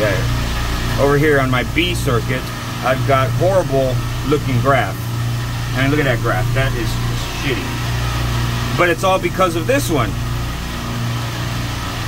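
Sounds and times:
machinery humming: 0.0 - 12.0.

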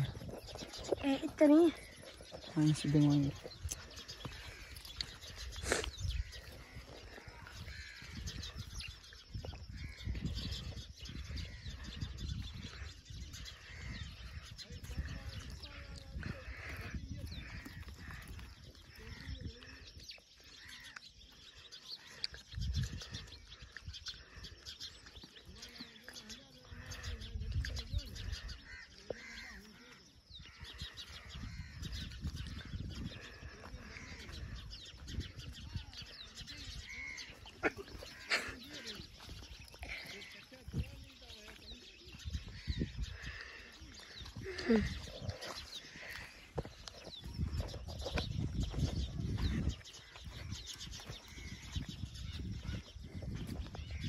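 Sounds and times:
low rumble on microphone: 0.0 - 1.2, 42.1 - 54.0
birds chirping: 0.0 - 54.0.

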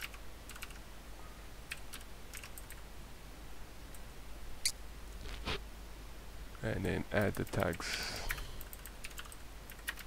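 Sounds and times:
computer keyboard typing: 0.0 - 0.8, 1.7 - 2.8, 7.5 - 10.0.

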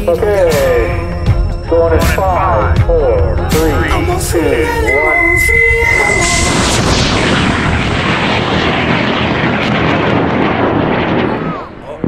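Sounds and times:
rocket motor roar: 2.2 - 12.0.

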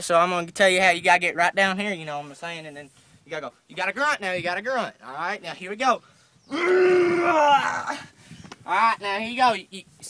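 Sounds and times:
man groaning with effort: 6.5 - 8.1.

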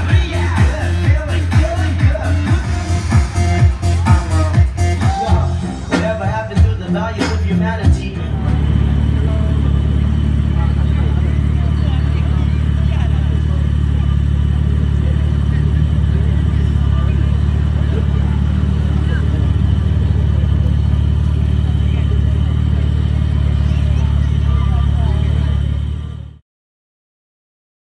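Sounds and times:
car engine idling: 0.0 - 26.4
people talking: 0.0 - 26.4.

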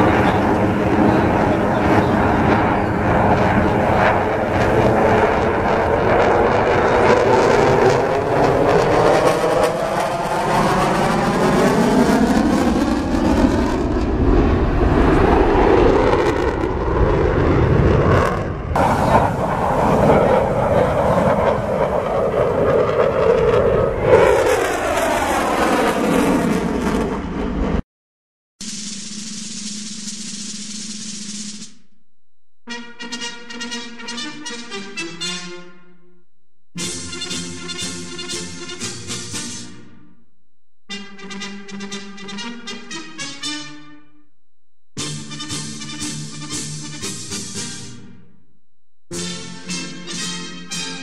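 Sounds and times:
jet flying overhead: 0.0 - 27.8.

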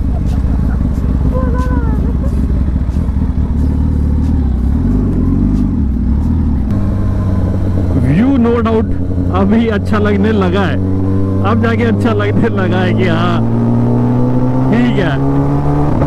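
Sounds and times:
motorcycle engine running: 0.0 - 16.0.

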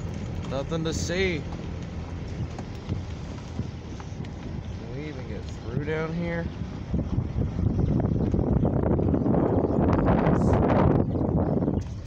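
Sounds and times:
tyres rumbling over broken asphalt: 0.0 - 10.5
wind buffeting microphone: 0.0 - 12.0.

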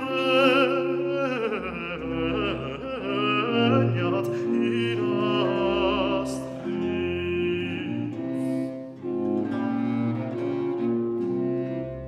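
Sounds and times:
plucked continuo accompaniment: 0.0 - 12.0.

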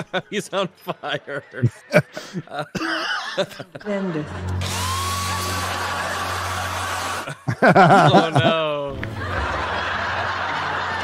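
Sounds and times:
hair dryer blowing: 4.6 - 7.3.

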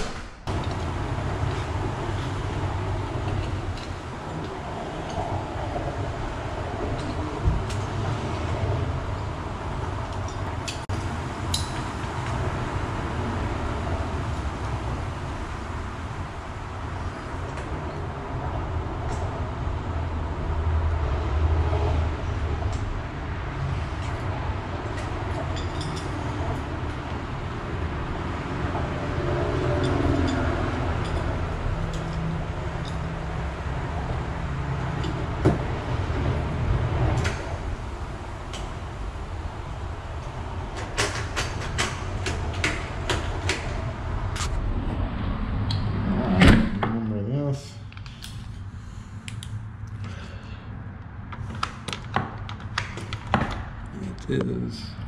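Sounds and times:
steady low rumble: 0.4 - 51.4.

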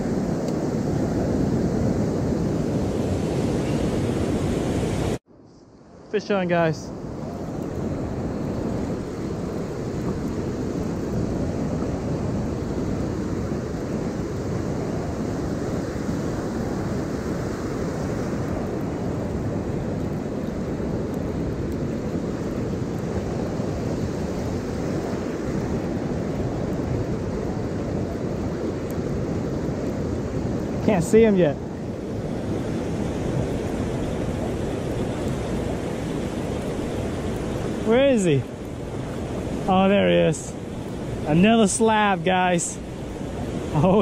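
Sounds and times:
ocean surf washing in: 0.0 - 5.2, 5.8 - 44.0
wind buffeting microphone: 0.0 - 5.2, 6.2 - 44.0.

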